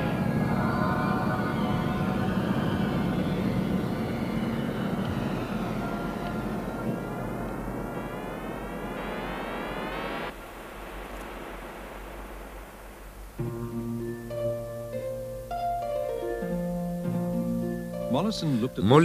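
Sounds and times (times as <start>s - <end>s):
low rumbling drone: 0.0s - 15.5s
faint hum: 0.0s - 19.0s.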